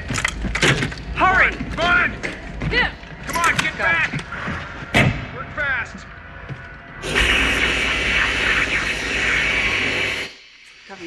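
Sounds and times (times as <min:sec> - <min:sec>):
welding torch hissing: 0:07.0 - 0:11.0.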